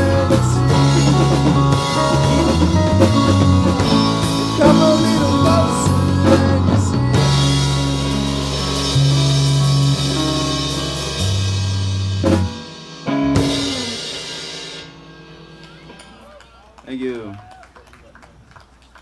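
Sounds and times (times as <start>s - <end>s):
rock band playing: 0.0s - 17.4s.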